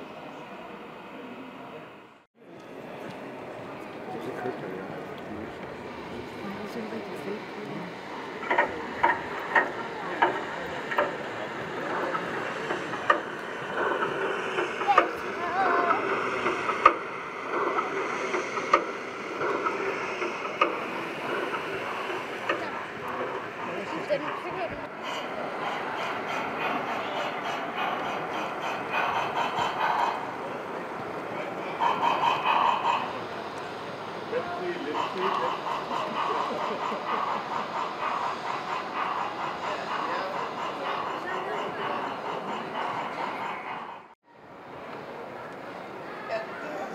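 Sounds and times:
busy hall background noise: 0:00.0 - 0:08.1, 0:44.3 - 0:46.9
model train rolling on track: 0:00.0 - 0:46.9.

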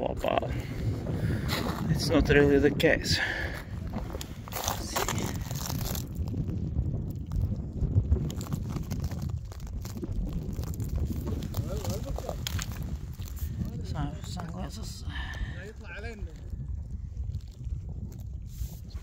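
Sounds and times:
wind rumble on microphone: 0:00.0 - 0:19.0
footsteps crunching on rock: 0:03.5 - 0:06.2.

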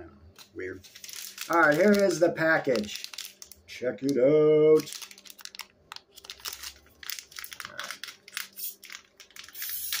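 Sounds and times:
plastic packaging crinkling: 0:00.8 - 0:03.6, 0:04.8 - 0:10.0.

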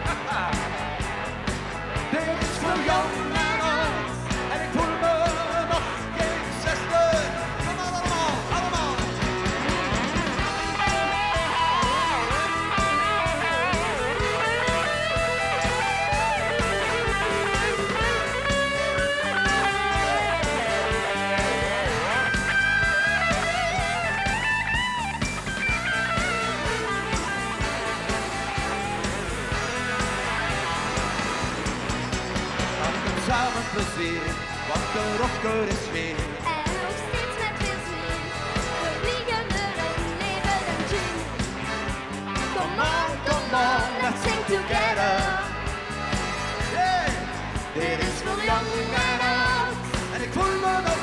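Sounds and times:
electric guitar lead bending notes: 0:00.0 - 0:51.0
live rock band playing: 0:00.0 - 0:51.0.

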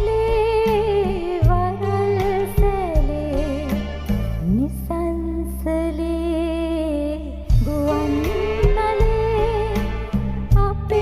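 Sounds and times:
low bass notes: 0:00.0 - 0:11.0
low beats: 0:07.2 - 0:11.0.

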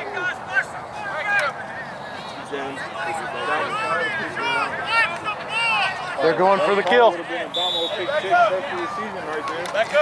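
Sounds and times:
spectators talking and laughing: 0:00.0 - 0:10.0
high referee's whistle: 0:07.5 - 0:08.4.

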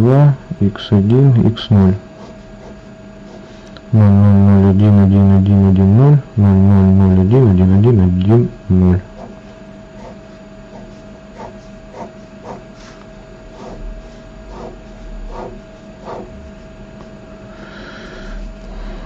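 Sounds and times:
faint steady hum: 0:00.0 - 0:19.0
pen scratching on paper: 0:02.2 - 0:03.6, 0:09.1 - 0:16.7.

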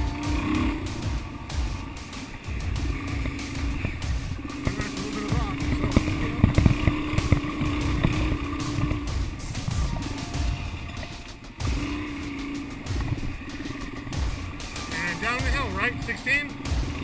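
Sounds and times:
dirt bike engine running: 0:00.0 - 0:17.0
low thumps from bumps: 0:00.0 - 0:17.0
wind on camera: 0:05.6 - 0:10.0.

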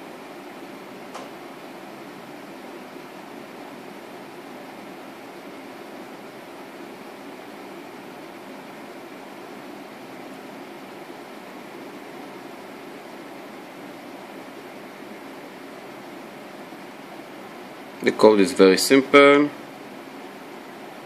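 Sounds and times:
steady background hiss: 0:00.0 - 0:21.0.

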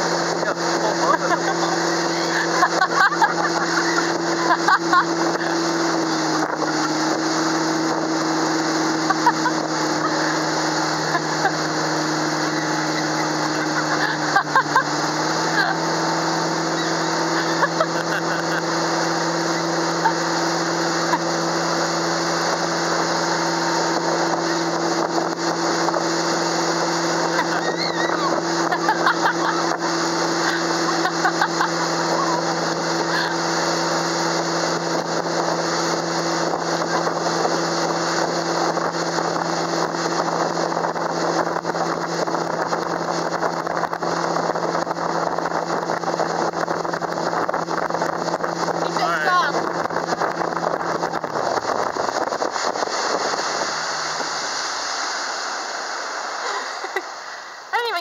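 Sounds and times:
motorboat engine droning: 0:00.0 - 0:58.0
water rushing in boat wake: 0:00.0 - 0:58.0.

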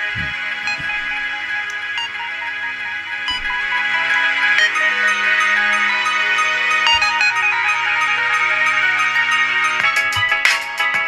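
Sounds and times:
repeating bright notes: 0:00.0 - 0:10.7
music through small speakers: 0:00.0 - 0:11.0.

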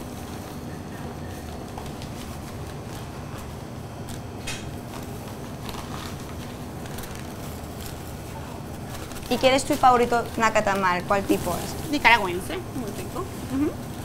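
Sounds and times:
paper and plastic crinkling: 0:00.0 - 0:14.0
steady background hum: 0:00.0 - 0:14.0.

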